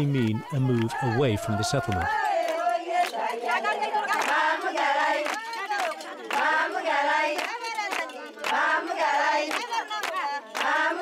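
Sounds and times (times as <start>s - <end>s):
women singing: 0.0s - 11.0s
hand claps: 0.1s - 11.0s.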